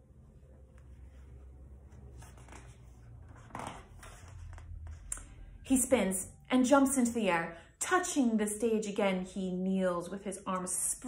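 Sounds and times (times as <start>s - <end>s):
faint low room hum: 0.0s - 11.0s
book page turning: 0.7s - 5.1s.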